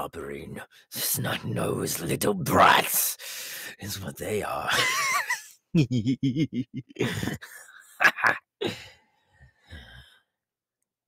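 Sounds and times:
person sighing: 7.0s - 9.0s, 9.6s - 10.2s.

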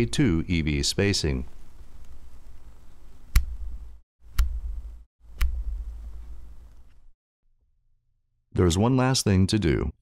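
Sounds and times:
steady low hum: 1.2s - 7.1s.

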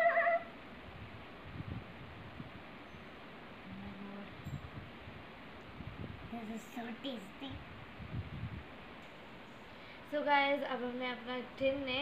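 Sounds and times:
short high wavering cry: 0.0s - 0.6s.

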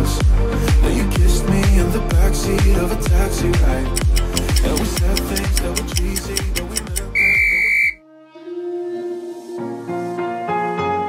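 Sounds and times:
soft slow music: 0.0s - 7.4s, 8.0s - 11.0s
beat music: 2.8s - 8.0s
electronic timer beep: 4.0s - 8.0s.

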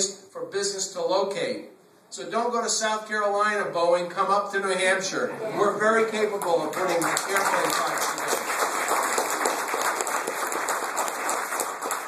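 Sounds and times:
audience clapping: 6.2s - 12.0s.

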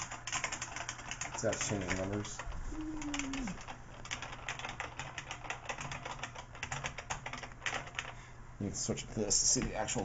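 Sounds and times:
keyboard keys typing: 0.0s - 8.2s.

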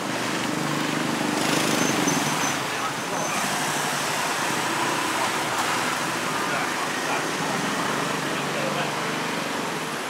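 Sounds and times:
cars and motorbikes traffic: 0.0s - 10.0s.

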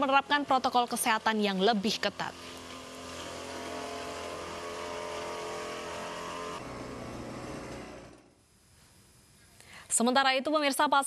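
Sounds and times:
sprayer engine running: 0.0s - 8.4s.

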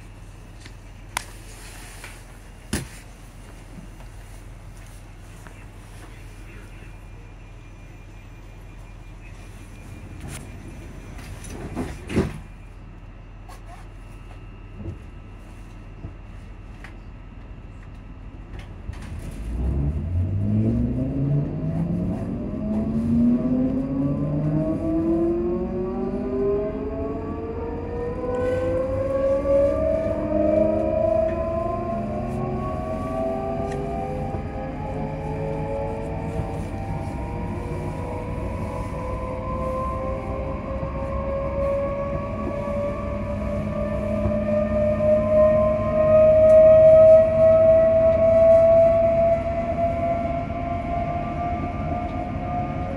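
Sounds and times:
train thump: 11.1s - 12.6s
traction motors whining: 18.6s - 52.9s.

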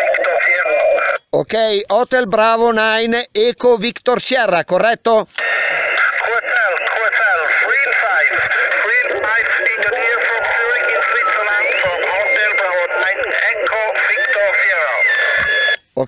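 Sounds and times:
overlapping radio voices: 0.0s - 16.0s.

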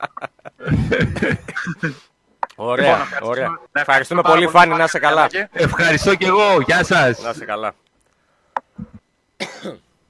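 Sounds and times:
man coughing: 0.6s - 2.1s, 9.4s - 9.8s.

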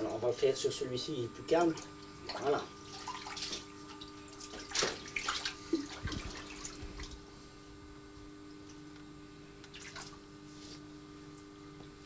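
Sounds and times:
steady low hum: 0.0s - 12.0s
water splashing in a tank: 1.5s - 7.3s, 9.6s - 10.4s.

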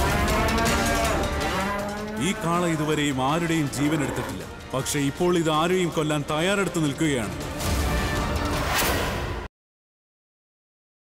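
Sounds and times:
bull bellowing: 0.0s - 4.6s
dramatic background music: 0.0s - 9.5s.

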